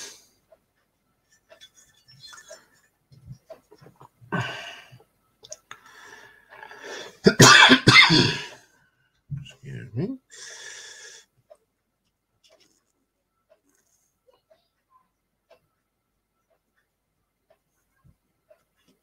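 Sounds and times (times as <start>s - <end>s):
man coughing loudly: 7.2s - 8.6s.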